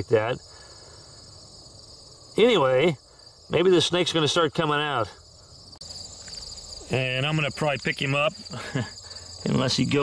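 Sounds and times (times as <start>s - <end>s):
insects trilling: 0.0s - 10.0s
louder insect trill: 0.0s - 10.0s.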